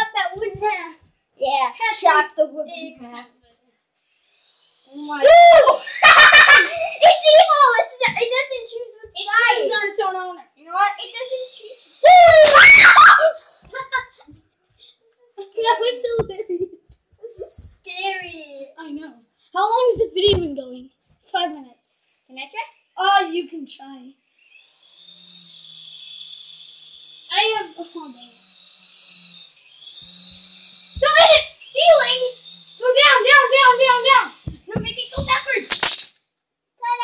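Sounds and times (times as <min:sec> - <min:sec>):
toy helicopter motor whine: 0:04.0 - 0:08.4, 0:10.7 - 0:14.1, 0:21.9 - 0:36.2
children calling and laughing: 0:04.5 - 0:24.5, 0:27.2 - 0:28.5, 0:30.3 - 0:35.7
loud high scream: 0:04.9 - 0:07.0, 0:11.0 - 0:13.5.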